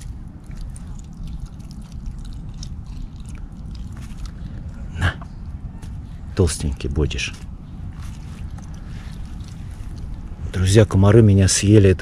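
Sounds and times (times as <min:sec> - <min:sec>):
fox chewing: 0:00.0 - 0:11.3
low steady rumble: 0:00.0 - 0:12.0.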